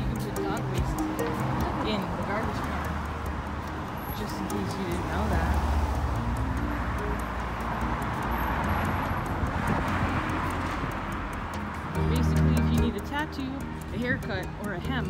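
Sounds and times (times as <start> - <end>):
car driving past: 5.2 - 11.9.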